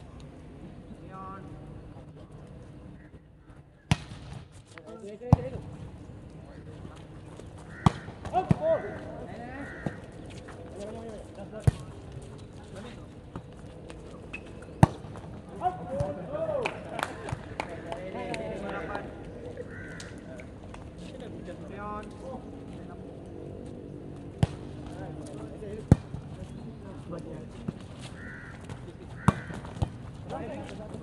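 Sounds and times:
players shouting: 7.8 - 10.1.

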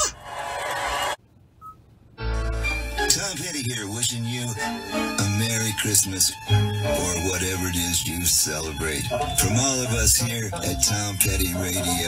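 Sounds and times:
sustained ringing tone: 6.9 - 12.0.

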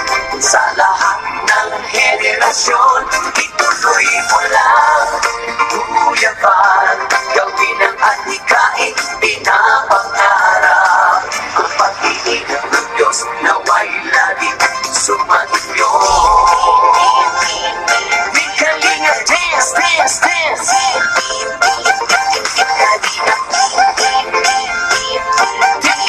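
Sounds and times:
person singing lead vocal: 0.3 - 21.1, 25.4 - 26.0
dance music beat: 15.8 - 20.6.

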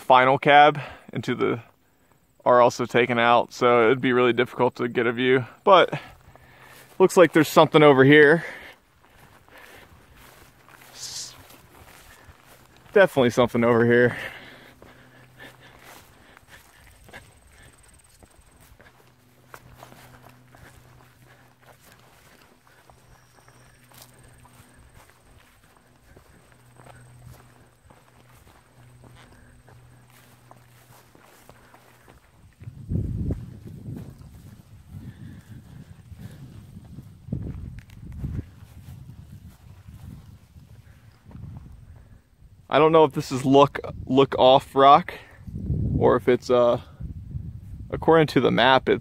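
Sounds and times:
faint steady low hum: 0.9 - 42.8
footsteps through grass and stone: 1.6 - 42.4
wind buffeting microphone: 30.7 - 42.7, 45.4 - 48.3.

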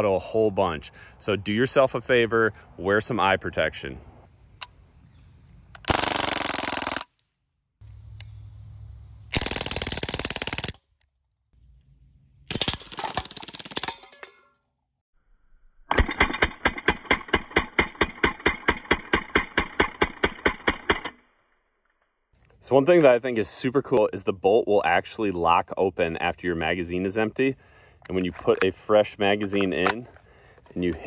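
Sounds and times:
bb rifle firing full auto: 9.4 - 10.8.

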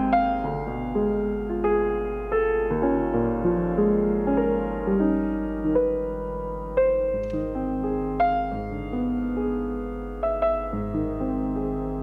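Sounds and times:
grand piano played softly: 0.0 - 12.0.

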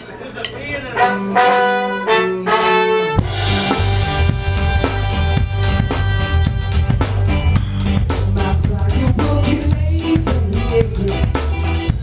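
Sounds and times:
ska band playing: 0.8 - 12.0
horn section held chords: 1.0 - 8.6.

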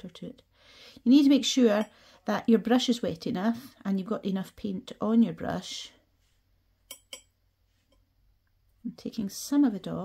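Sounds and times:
brush tapping ceramic palette: 6.8 - 8.1.

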